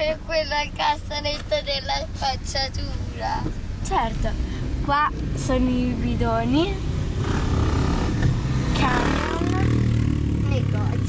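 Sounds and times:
car engine rumble and road noise: 0:00.0 - 0:11.0.

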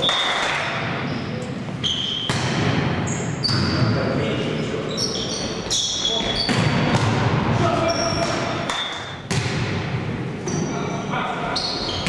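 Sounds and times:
voices in echoing hall: 0:00.0 - 0:12.0
sneakers squeaking on court: 0:01.0 - 0:04.0, 0:04.6 - 0:07.1, 0:10.4 - 0:12.0.

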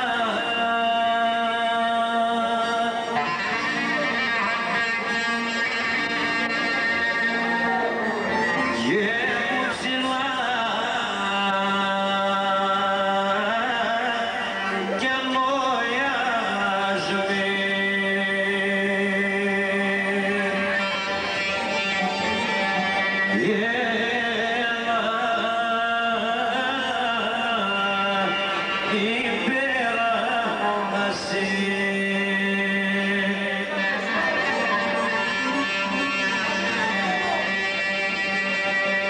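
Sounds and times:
electric keyboard: 0:00.0 - 0:39.0
folk band music: 0:00.0 - 0:39.0
man singing: 0:00.0 - 0:39.0
string accompaniment with hammered dulcimer: 0:00.0 - 0:39.0
plucked lute: 0:28.2 - 0:39.0
clarinet melody: 0:33.8 - 0:39.0.

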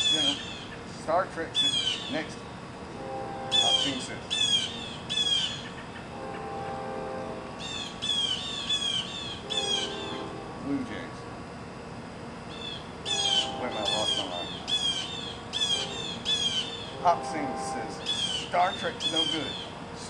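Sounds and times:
bird squawking: 0:00.0 - 0:00.8, 0:01.6 - 0:02.3, 0:03.5 - 0:06.6, 0:07.6 - 0:10.4, 0:12.5 - 0:19.8.

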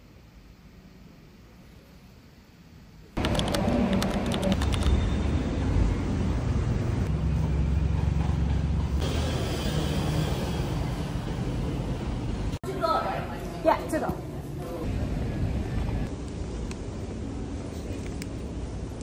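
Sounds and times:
traffic rumble: 0:03.2 - 0:19.0.

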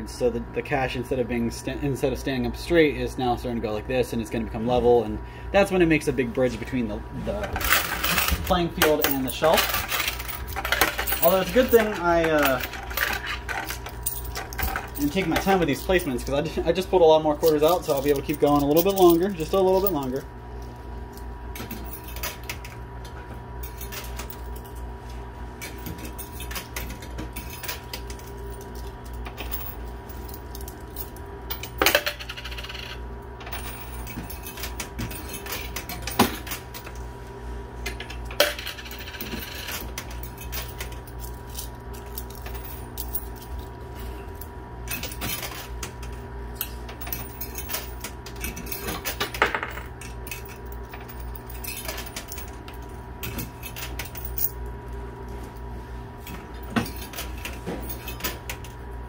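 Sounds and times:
coins dropping and clinking: 0:07.5 - 0:16.4, 0:23.6 - 0:24.8, 0:25.6 - 0:36.9, 0:37.9 - 0:44.3, 0:44.9 - 0:54.6.

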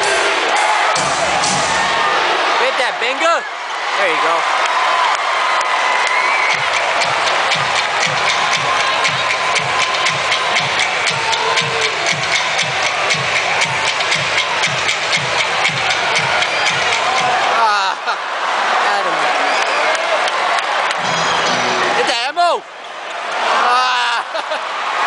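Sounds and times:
arena crowd noise: 0:00.0 - 0:25.0
music over public-address system: 0:06.6 - 0:17.5, 0:21.0 - 0:22.1.

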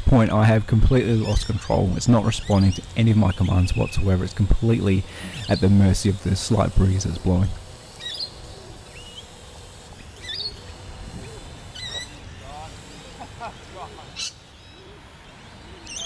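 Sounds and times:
distant faint voices: 0:00.0 - 0:16.0.

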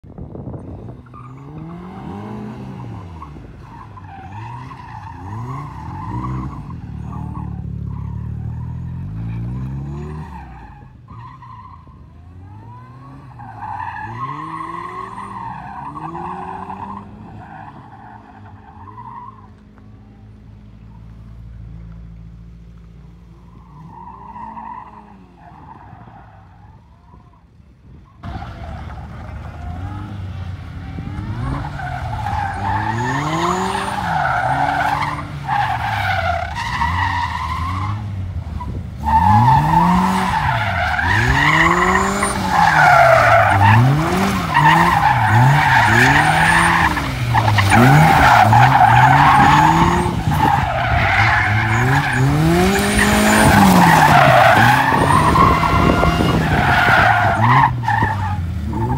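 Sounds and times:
tyres skidding on dirt: 0:00.4 - 0:27.4, 0:28.0 - 0:58.9
car engine revving: 0:28.2 - 0:58.9.

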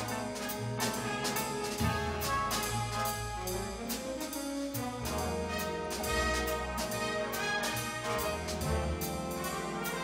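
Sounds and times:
brass and saxophones: 0:00.0 - 0:10.0
drum kit and cymbal hits: 0:00.0 - 0:10.0
walking upright bass: 0:00.0 - 0:10.0.

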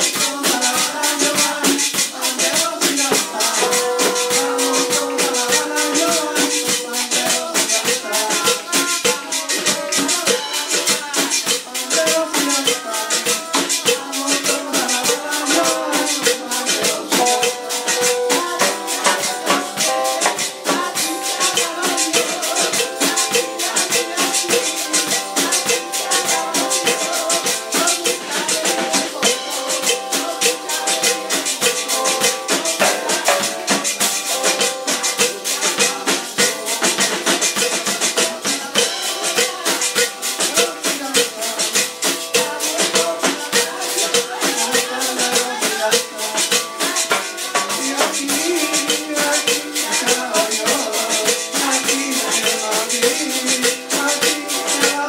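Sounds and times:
church worship music: 0:00.0 - 0:55.0
maracas shaken: 0:00.0 - 0:55.0.

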